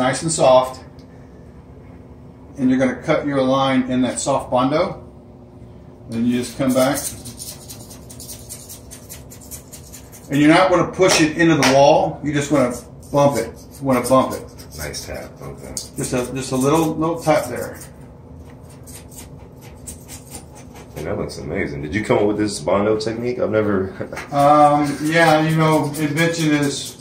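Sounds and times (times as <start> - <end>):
razor blade scratching: 6.3 - 10.5, 12.4 - 21.2, 24.3 - 27.0
knife blade scraping filler: 18.6 - 21.0, 24.3 - 27.0.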